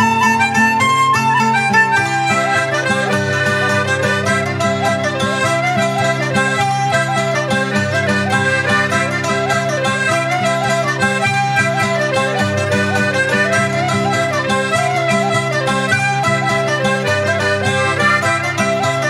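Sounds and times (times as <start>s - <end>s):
acoustic guitar strumming: 0.0s - 19.0s
free-reed instrument melody: 0.0s - 19.0s.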